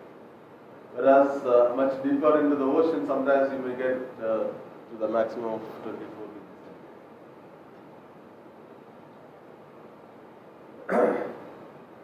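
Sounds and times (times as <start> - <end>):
faint room hiss: 0.0 - 12.0
man coughing: 10.9 - 11.5.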